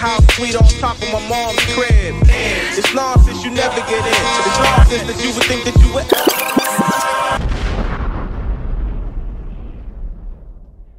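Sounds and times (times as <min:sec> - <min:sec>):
hip-hop music: 0:00.0 - 0:07.4.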